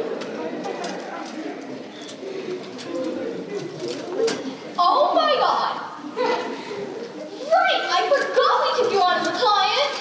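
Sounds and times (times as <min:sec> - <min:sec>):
murmured voices: 0:00.0 - 0:10.0.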